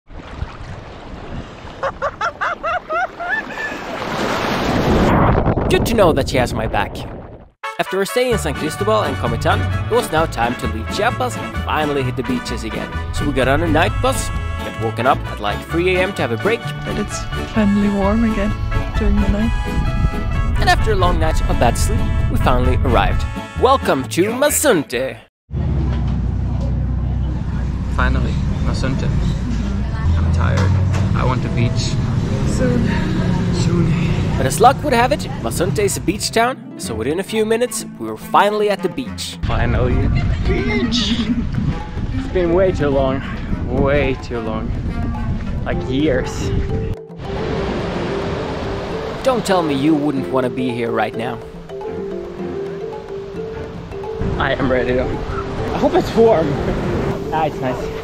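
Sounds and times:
wind buffeting microphone: 0:00.1 - 0:02.3, 0:04.6 - 0:07.6, 0:17.1 - 0:23.3, 0:39.4 - 0:49.3
shallow sea water washing: 0:00.1 - 0:05.2.

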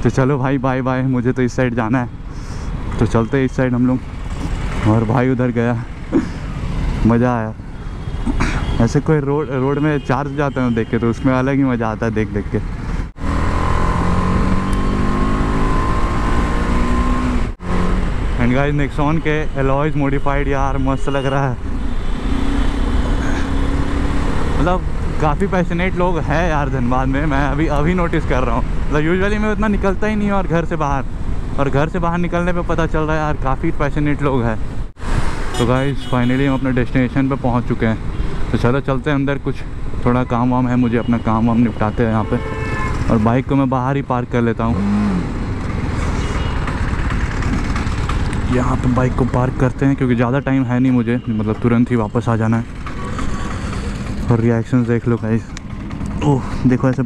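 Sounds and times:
motorcycle engine humming: 0:00.0 - 0:57.0
motorcycle engine idling: 0:45.6 - 0:49.0, 0:52.5 - 0:57.0.

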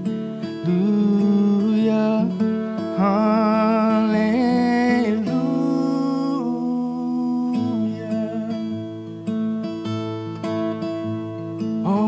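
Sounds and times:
acoustic guitar: 0:00.0 - 0:12.0
man singing with vibrato: 0:00.6 - 0:08.9, 0:11.8 - 0:12.0.

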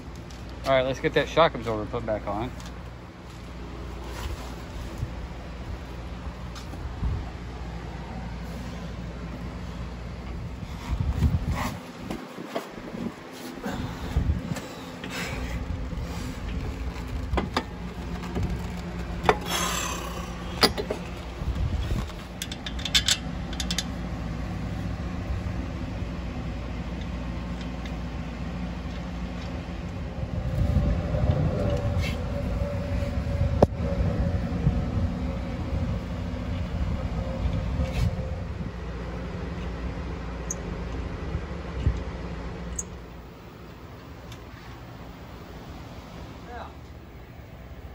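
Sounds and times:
steady low hum: 0:00.0 - 0:47.9.

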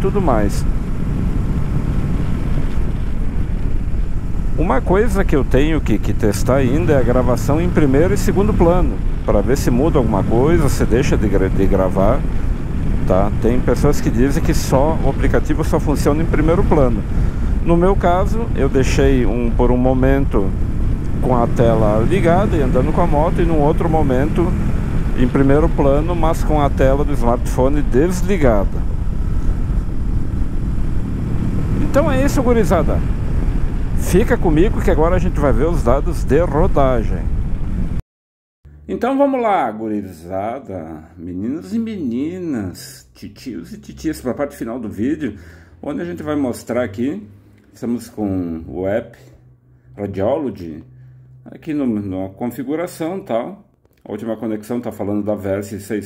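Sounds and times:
motorcycle road noise: 0:00.0 - 0:38.0, 0:43.6 - 0:52.0
wind rushing over microphone: 0:00.0 - 0:38.0.

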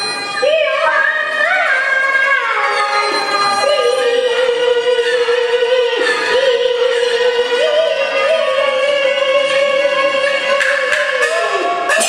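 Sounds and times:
woman singing opera with vibrato: 0:00.4 - 0:12.0.

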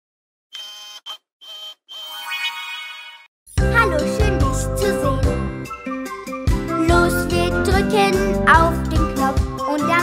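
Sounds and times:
electronic logo jingle tones: 0:02.0 - 0:03.3.

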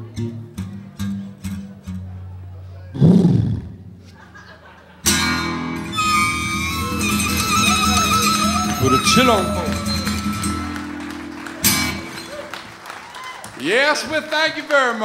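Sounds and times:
acoustic blues guitar: 0:00.0 - 0:04.1, 0:05.0 - 0:12.6.

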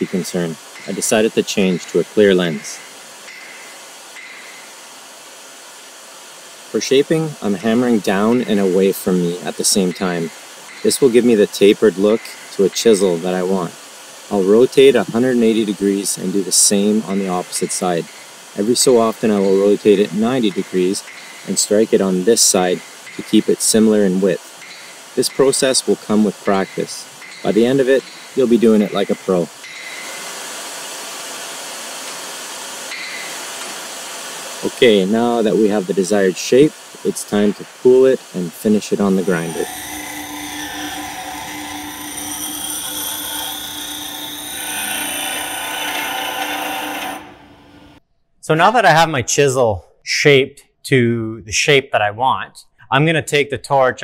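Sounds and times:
heating torch hissing: 0:00.4 - 0:42.5.

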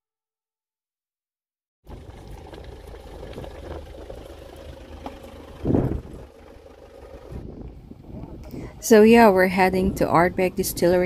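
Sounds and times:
low outdoor rumble: 0:01.9 - 0:11.0.

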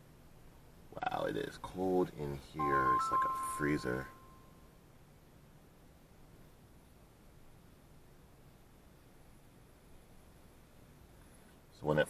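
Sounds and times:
thin steady tone: 0:02.5 - 0:04.8.

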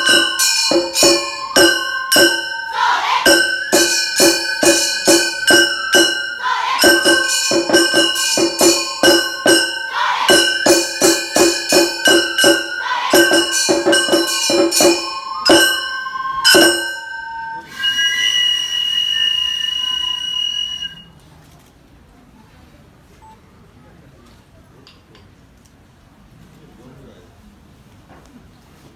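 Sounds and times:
small brass gongs ringing: 0:00.0 - 0:18.3
held high note: 0:00.0 - 0:21.1.

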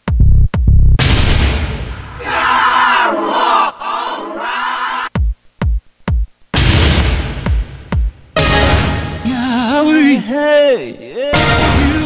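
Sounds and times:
crowd shouting: 0:02.1 - 0:05.1.

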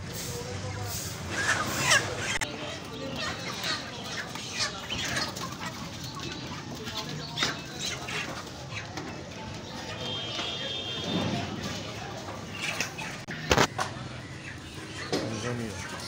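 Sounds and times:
chickens clucking: 0:00.0 - 0:16.0.

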